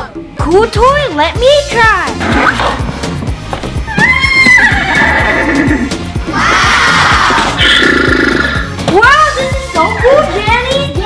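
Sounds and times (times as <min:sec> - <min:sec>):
background music with steady beat: 0:00.0 - 0:11.0
horse whinny: 0:03.9 - 0:08.8.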